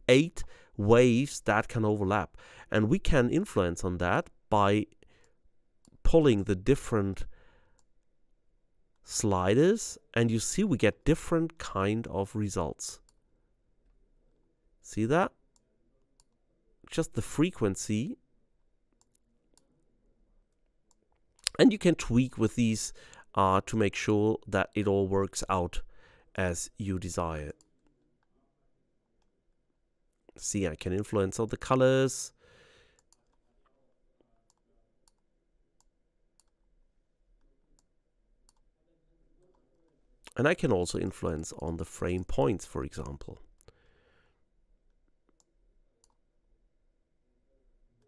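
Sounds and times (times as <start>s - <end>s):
person speaking: 0.0s - 5.0s, 5.9s - 7.3s, 16.8s - 18.2s, 21.4s - 27.7s, 30.3s - 32.4s, 39.4s - 43.6s
computer mouse clicks: 33.0s - 33.4s, 35.8s - 36.6s, 45.3s - 46.2s
faint computer mouse clicks: 45.3s - 46.2s.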